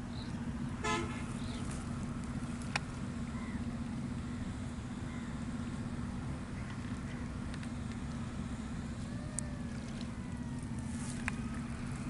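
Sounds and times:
low engine drone: 0.0 - 12.0
short horn toot: 0.8 - 1.3.

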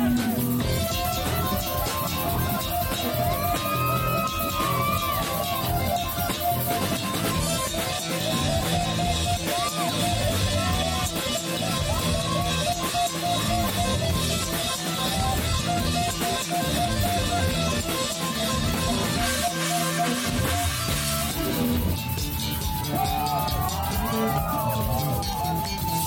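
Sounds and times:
bass guitar: 0.0 - 26.0
drums: 0.0 - 26.0
electric guitars: 0.0 - 26.0.

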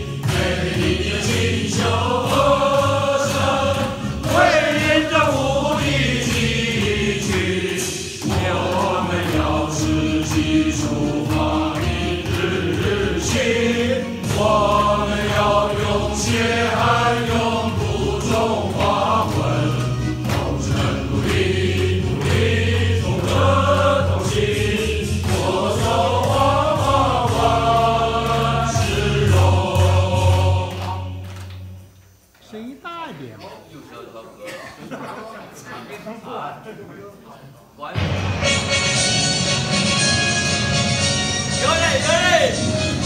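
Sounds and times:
group of people singing in unison: 0.0 - 31.9
steady low accompaniment: 0.0 - 31.9.

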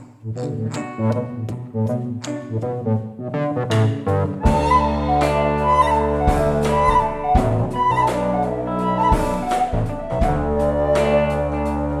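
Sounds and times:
electric guitar: 0.0 - 12.0
drum hits: 4.5 - 10.9.

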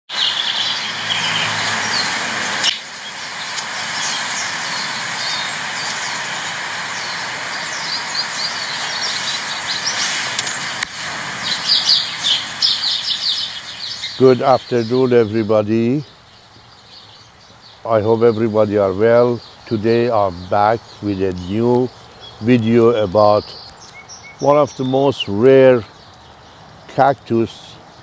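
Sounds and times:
birds calling: 0.1 - 28.0
steady hiss: 0.1 - 28.0.

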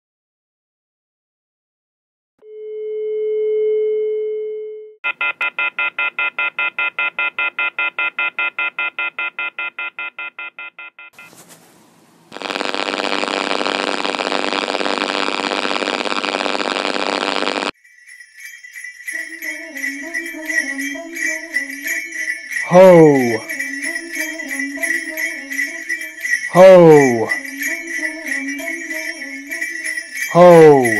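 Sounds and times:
telephone tone: 2.4 - 11.4, 12.4 - 17.8
loud steady tone: 12.3 - 17.7, 22.6 - 29.7, 30.3 - 30.9
rapid pulsing telephone ring: 12.4 - 30.9.

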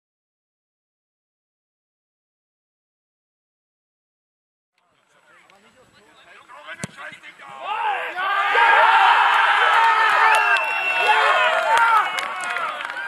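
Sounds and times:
crowd shouting and cheering: 7.4 - 13.0.

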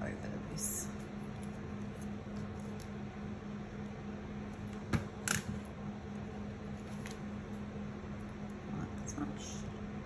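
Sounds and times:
electrical fan hum: 0.0 - 10.0.

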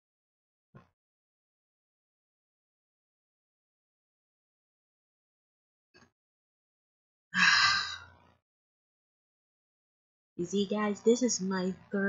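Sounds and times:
person sighing: 7.4 - 8.0.

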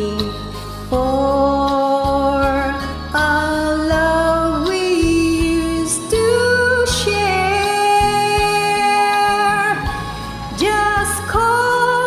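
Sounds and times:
slow ballad backing chords: 0.0 - 12.0.

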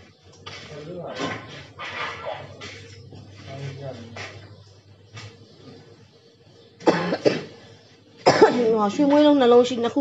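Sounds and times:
person coughing: 6.8 - 7.6, 8.2 - 8.7.

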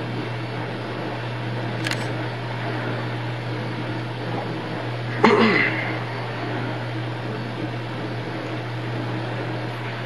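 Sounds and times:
steady low hum: 0.0 - 10.0
short click: 1.8 - 2.1.

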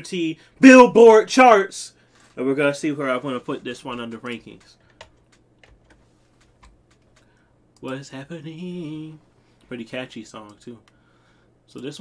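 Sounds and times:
keyboard clicks: 3.9 - 8.0.

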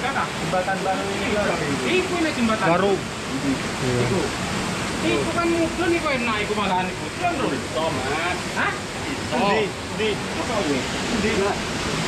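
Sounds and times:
fast-flowing water rushing: 0.0 - 12.0.

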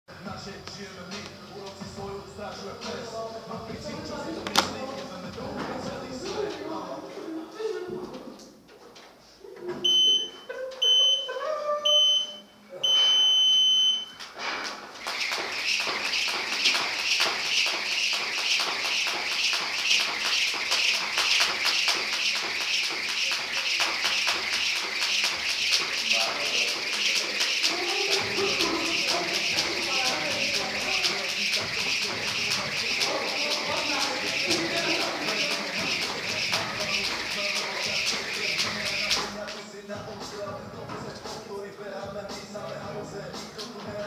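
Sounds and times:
timer beeps: 9.8 - 14.2
jump rope whipping: 14.6 - 39.6.

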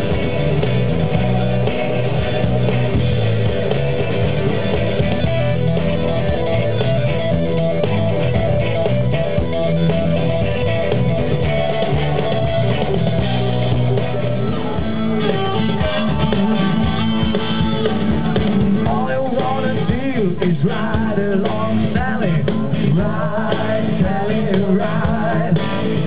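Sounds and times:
blues band playing live: 0.0 - 26.0
pitch-bending guitar lead: 0.0 - 26.0.

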